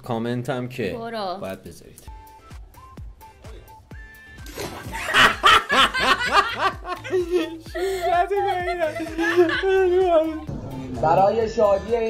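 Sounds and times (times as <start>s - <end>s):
man and woman laughing: 4.7s - 10.5s.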